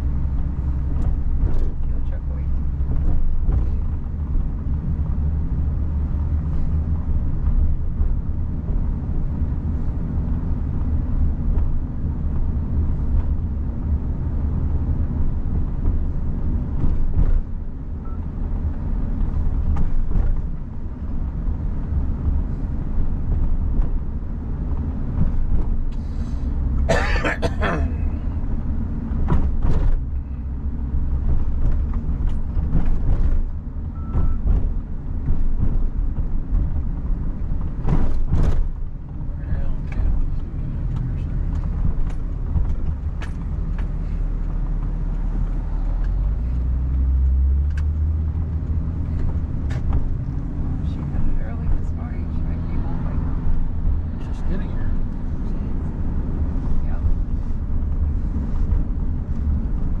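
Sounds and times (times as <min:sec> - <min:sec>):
road and engine rumble: 0:00.0 - 1:00.0.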